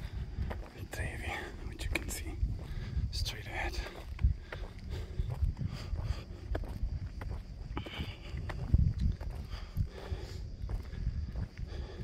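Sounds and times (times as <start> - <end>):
wind rumble on microphone: 0.0 - 12.0
half-whispered speech: 0.8 - 2.4, 3.1 - 4.0.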